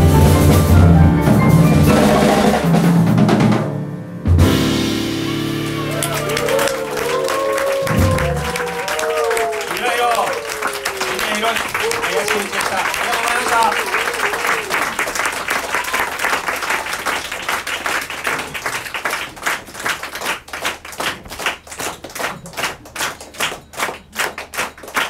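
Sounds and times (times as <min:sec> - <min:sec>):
shouted cheers: 0:05.3 - 0:17.2
audience applauding: 0:05.3 - 0:25.0.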